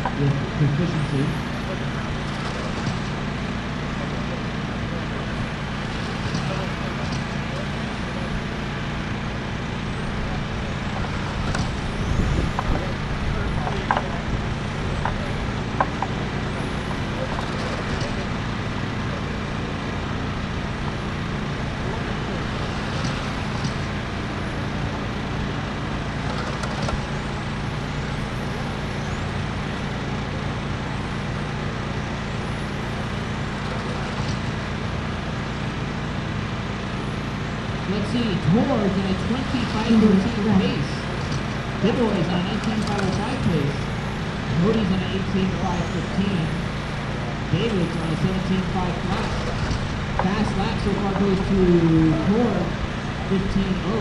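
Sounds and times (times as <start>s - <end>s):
steady background noise: 0.0s - 54.0s
rc car motors whining: 0.8s - 35.9s, 38.0s - 54.0s
sharp clicks: 26.2s - 27.3s, 42.5s - 43.5s.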